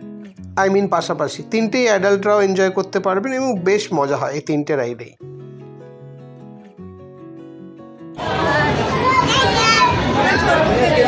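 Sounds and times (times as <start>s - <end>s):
soft background music: 0.0s - 8.2s
crowd chatter: 8.2s - 11.0s
child laughing and shrieking: 8.9s - 10.2s.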